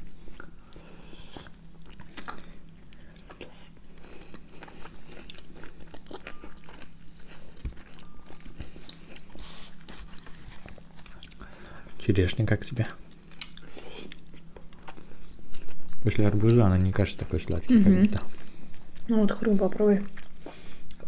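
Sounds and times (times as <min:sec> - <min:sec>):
biting and chewing fruit: 0:01.2 - 0:11.5.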